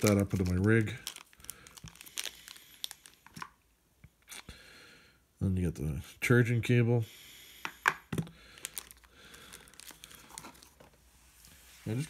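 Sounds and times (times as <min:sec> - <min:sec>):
plastic bag crinkling: 0:00.0 - 0:03.5, 0:08.2 - 0:10.9.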